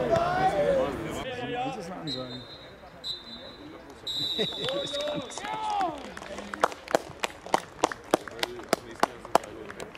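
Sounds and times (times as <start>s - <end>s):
players shouting: 0.0s - 2.1s
referee's whistle blasts: 2.0s - 5.0s.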